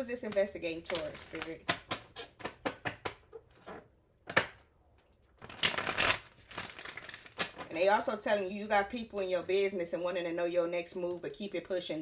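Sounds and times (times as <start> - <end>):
cards shuffling: 5.4 - 7.7.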